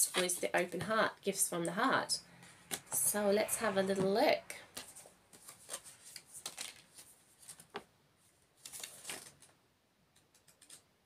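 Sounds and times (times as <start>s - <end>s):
cards being shuffled: 4.7s - 7.8s.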